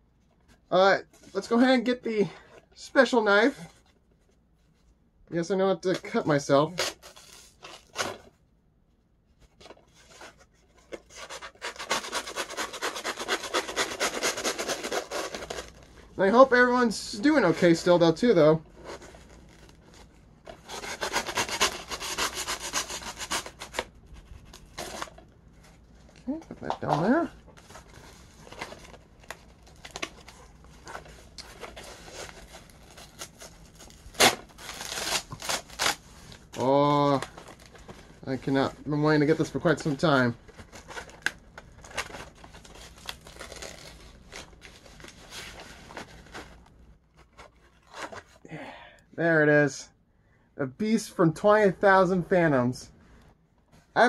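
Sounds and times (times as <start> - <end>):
cardboard being cut and torn: 6.7 - 8.2, 10.0 - 15.8, 20.6 - 23.9, 30.9 - 36.0, 40.7 - 46.1
cardboard crackling and rustling: 26.4 - 38.6, 39.2 - 48.4.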